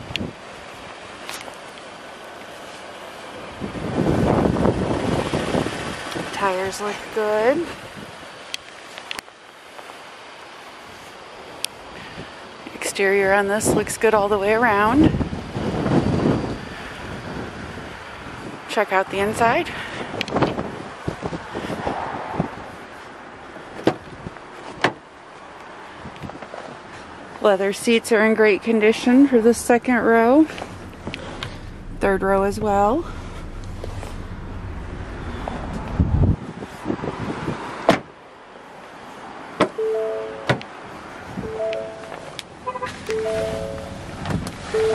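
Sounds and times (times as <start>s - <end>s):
wind rumble on microphone: 0.0s - 0.9s, 3.4s - 8.4s, 13.2s - 23.0s, 29.5s - 37.9s, 42.9s - 44.9s
wind hiss on microphone: 3.4s - 9.0s
microphone handling noise: 30.5s - 36.7s
loud thump: 30.6s - 36.4s.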